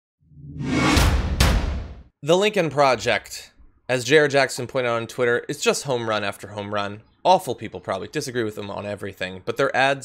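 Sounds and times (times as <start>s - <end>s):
whoosh with bass hit: 0.4s - 2.0s
sharp impacts: 0.4s - 2.1s.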